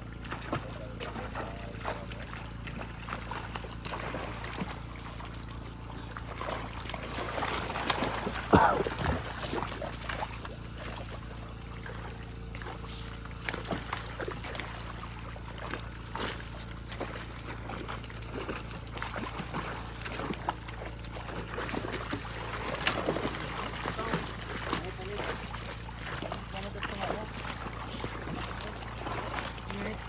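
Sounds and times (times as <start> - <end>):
fish splashing: 0.0 - 30.0
low steady hum: 0.0 - 30.0
water splashing and sloshing: 0.0 - 30.0.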